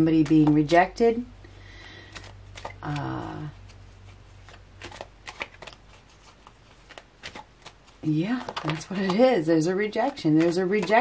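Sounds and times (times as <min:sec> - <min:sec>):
cards being shuffled: 0:00.0 - 0:01.0, 0:01.8 - 0:11.0.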